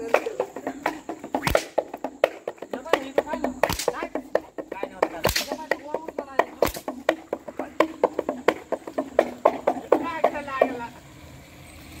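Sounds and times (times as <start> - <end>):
whip crack: 1.4 - 2.4, 3.6 - 4.1, 5.2 - 5.8, 6.6 - 7.0.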